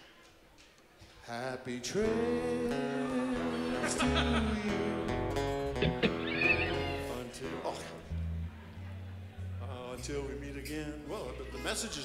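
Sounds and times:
live rock band playing: 0:05.2 - 0:07.3.

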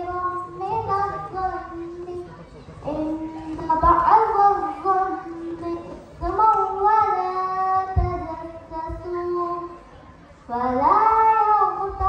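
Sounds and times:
girl singing into microphone: 0:00.0 - 0:12.0
low thumps: 0:07.8 - 0:09.4.

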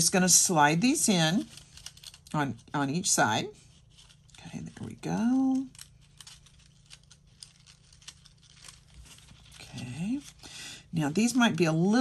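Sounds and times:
paper rustling: 0:01.1 - 0:02.7, 0:03.6 - 0:10.4.

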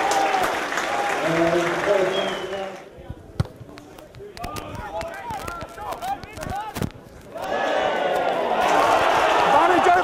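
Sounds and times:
players shouting: 0:07.3 - 0:10.0.

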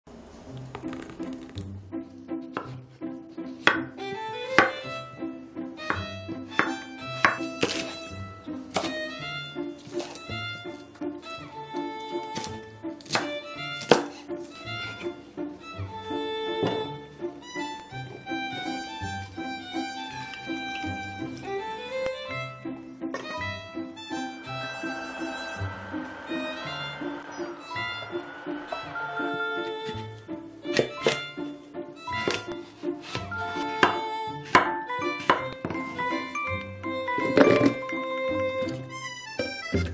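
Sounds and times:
bouncy background music: 0:00.6 - 0:39.9
knife striking cutting board: 0:03.7 - 0:03.9, 0:04.6 - 0:04.8, 0:05.9 - 0:08.0, 0:12.4 - 0:14.2, 0:30.7 - 0:31.2, 0:32.2 - 0:35.5.

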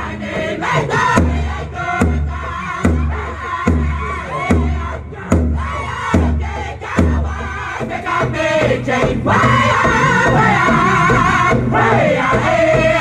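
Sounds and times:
drum beaten with low boom: 0:00.0 - 0:13.0
group of voices singing: 0:00.0 - 0:13.0.

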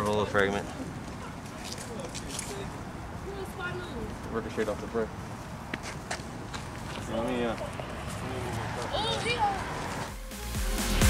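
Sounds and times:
street background noise: 0:00.0 - 0:10.6
footsteps on concrete: 0:03.8 - 0:10.2.

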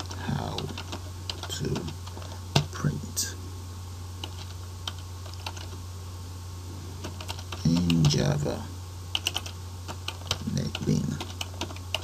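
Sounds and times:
keyboard typing clicks: 0:09.2 - 0:12.0.

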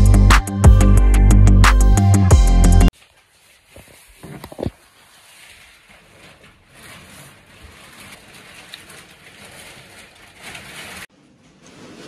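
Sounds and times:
rustling and handling noise: 0:02.9 - 0:12.0.

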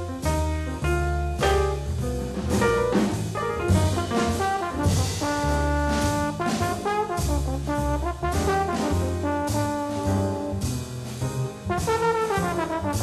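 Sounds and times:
jazz band: 0:00.0 - 0:13.0
trumpet and trombone held notes: 0:04.0 - 0:10.7, 0:11.7 - 0:13.0.

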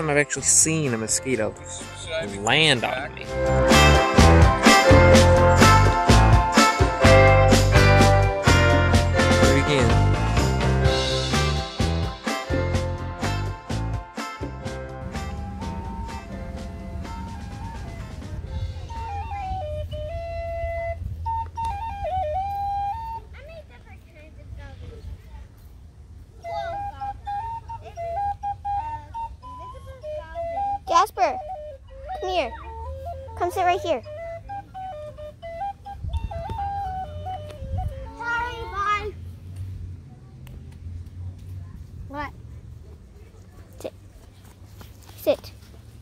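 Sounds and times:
wind instrument slow melody: 0:13.2 - 0:23.4, 0:26.4 - 0:39.0
low microphone rumble: 0:14.4 - 0:26.2
steady low hum: 0:14.5 - 0:21.3.

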